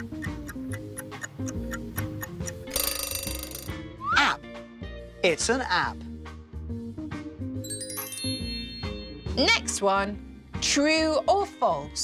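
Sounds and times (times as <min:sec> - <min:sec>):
clock ticking: 0:00.0 - 0:03.7
alarm bell ringing: 0:02.7 - 0:03.7.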